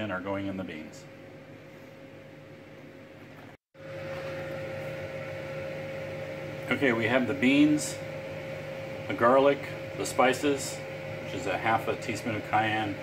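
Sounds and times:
steady electric hum: 0.0s - 13.0s.

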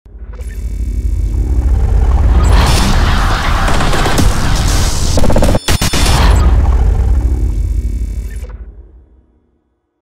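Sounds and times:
deep low rumble: 0.7s - 5.4s, 6.2s - 9.5s.

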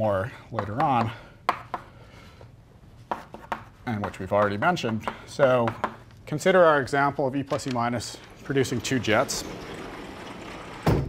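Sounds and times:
faint room noise: 0.0s - 11.0s
chalk tapping on blackboard: 0.6s - 1.9s, 3.1s - 6.0s
chalk scraping on blackboard: 3.1s - 4.1s.

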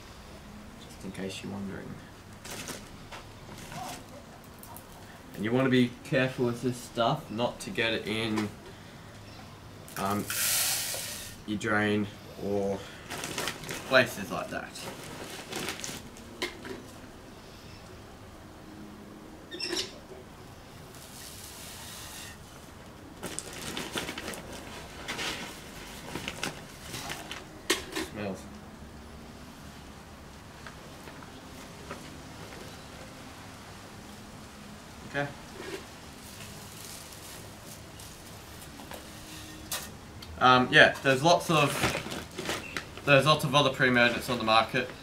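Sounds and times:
plastic bag rustling: 2.4s - 5.0s, 12.9s - 17.0s, 20.9s - 28.0s, 35.6s - 39.4s, 41.0s - 45.0s.

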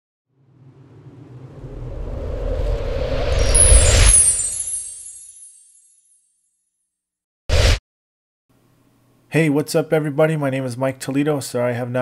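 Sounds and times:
low rumble: 0.3s - 4.4s.

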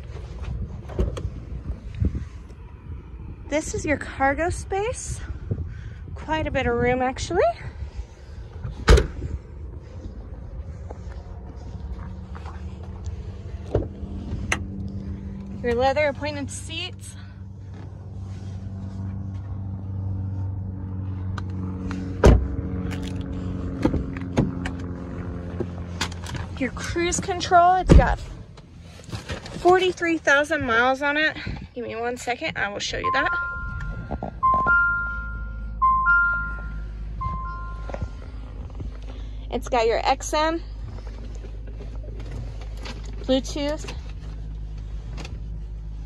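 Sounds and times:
low steady hum: 0.0s - 46.0s
car engine idling: 7.8s - 29.0s, 33.0s - 46.0s
two-note warning chime: 33.0s - 38.1s.

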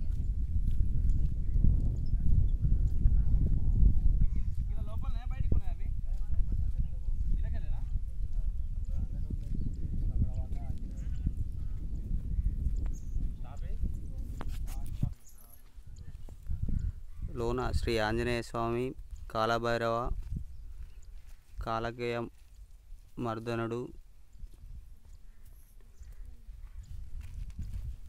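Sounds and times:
low microphone rumble: 0.0s - 15.2s, 15.8s - 19.1s
footsteps on dirt path: 0.0s - 28.0s.

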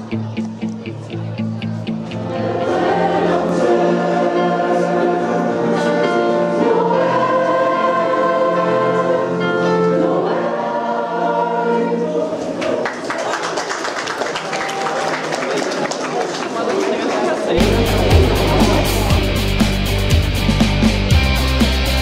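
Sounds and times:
choir singing: 2.2s - 13.0s, 17.5s - 20.0s.

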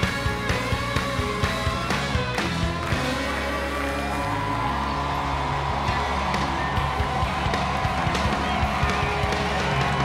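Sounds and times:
country-rock band music: 0.0s - 10.0s
rising guitar slide: 0.1s - 6.7s.

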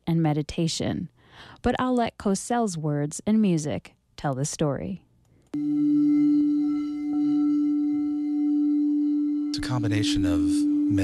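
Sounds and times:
crystal singing bowl ringing: 5.6s - 11.0s.

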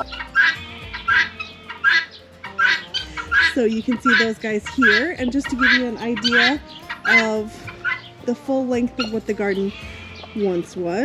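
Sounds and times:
guinea fowl calling: 0.0s - 8.2s, 9.0s - 10.6s.

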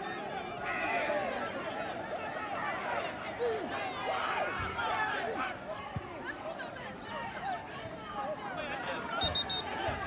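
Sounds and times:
voices talking and calling out: 0.0s - 10.0s.

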